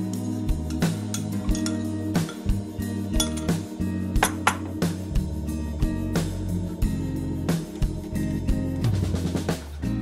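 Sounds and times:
background music: 0.0 - 10.0
metal spoon clinking ceramic bowl: 0.7 - 3.6.

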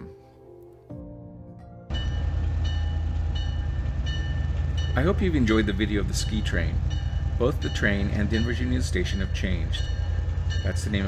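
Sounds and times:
soft background music: 0.0 - 11.0
diesel locomotive engine rumble: 1.9 - 11.0.

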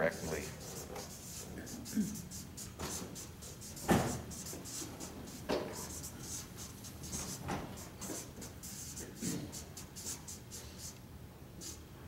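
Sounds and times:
marker scratching on paper: 0.2 - 11.0, 11.6 - 11.8.

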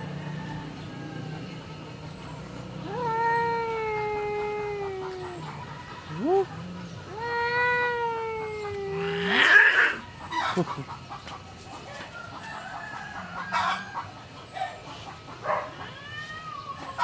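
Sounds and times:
cats caterwauling: 2.7 - 10.5, 15.4 - 17.0.

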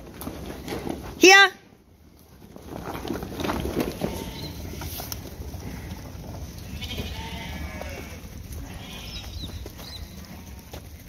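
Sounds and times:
sheep bleating: 4.0 - 4.8, 6.6 - 10.8.

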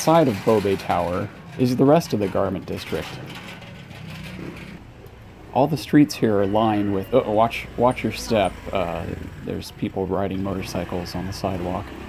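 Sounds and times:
street traffic noise: 0.0 - 12.0
vehicle engine running: 0.0 - 12.0.

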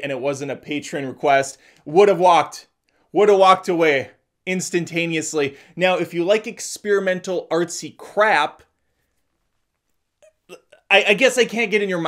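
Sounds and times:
man speaking: 0.0 - 8.7, 10.4 - 12.0
faint mouth sounds: 9.8 - 10.9.

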